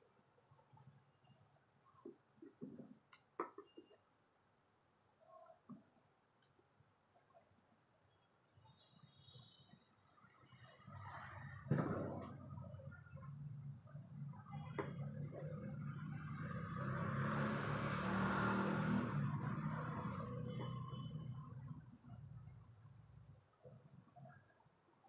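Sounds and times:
vehicle passing by: 15.6s - 21.0s.

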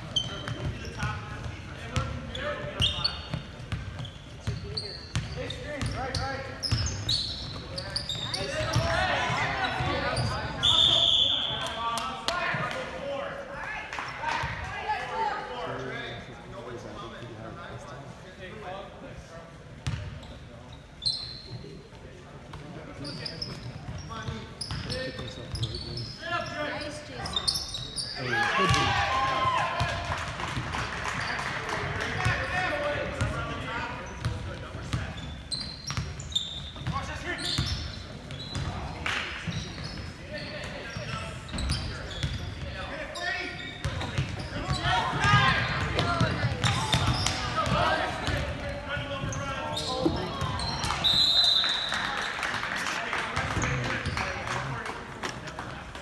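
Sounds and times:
shoe squeaks on hardwood: 0.0s - 1.1s, 2.3s - 8.8s, 20.2s - 21.6s, 22.9s - 28.2s, 35.0s - 38.8s
people calling out and talking: 40.3s - 52.4s.

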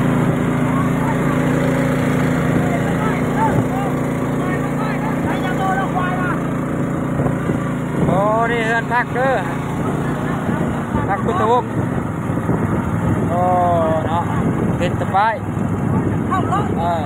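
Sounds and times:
boat engine running: 0.0s - 17.0s
voices calling out: 0.0s - 17.0s
water washing: 0.0s - 17.0s.

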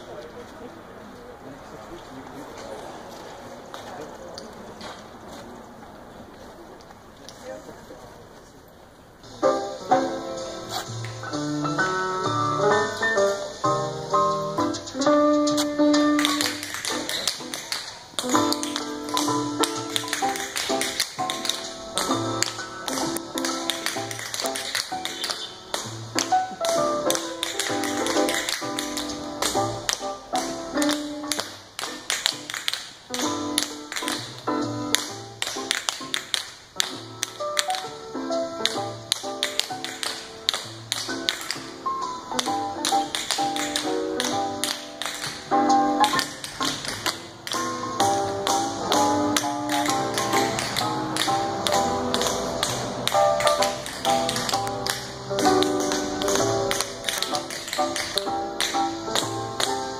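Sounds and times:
music playing: 9.2s - 59.9s.

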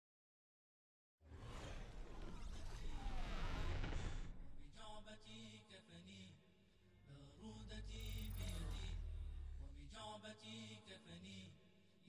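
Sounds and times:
chant-like voice: 4.1s - 12.0s.

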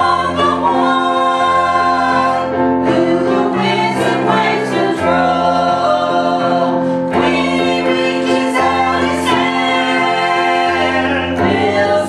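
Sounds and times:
digital piano: 0.0s - 12.0s
vocal group singing a hymn: 0.0s - 12.0s.

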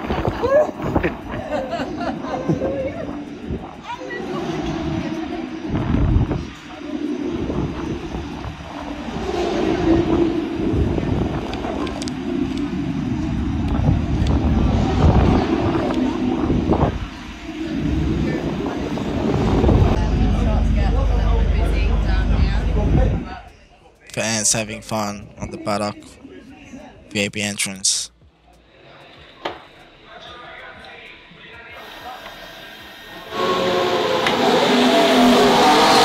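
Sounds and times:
low rumble: 0.0s - 23.8s
people talking in a crowd: 0.0s - 33.8s.

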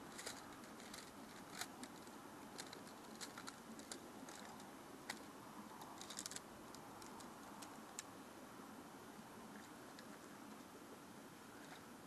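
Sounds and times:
tent pole sections clicking: 0.0s - 8.1s.

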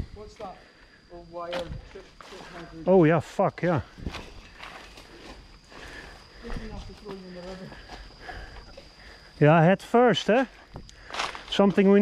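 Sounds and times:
footsteps on dirt trail: 3.8s - 9.3s, 10.3s - 12.0s.

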